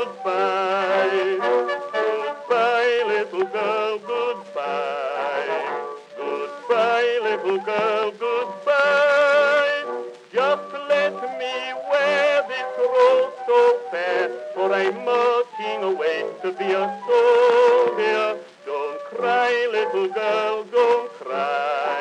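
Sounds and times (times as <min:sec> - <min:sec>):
orchestra with brass: 0:00.0 - 0:22.0.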